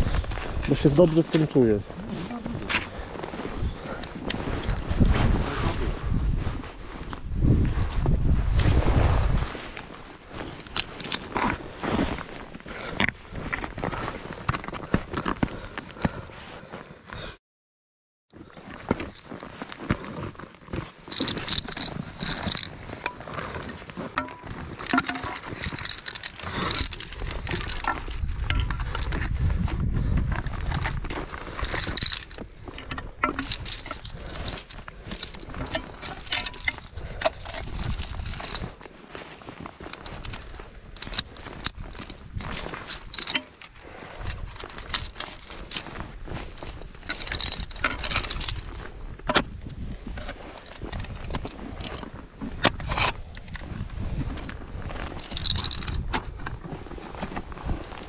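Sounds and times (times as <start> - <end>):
climbing gear clinking and scraping: 0.0 - 16.4, 18.3 - 58.0.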